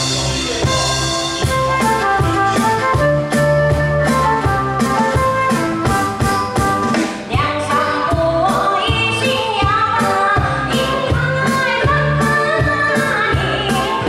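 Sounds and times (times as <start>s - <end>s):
live band playing: 0.0s - 14.0s
woman singing: 7.2s - 14.0s.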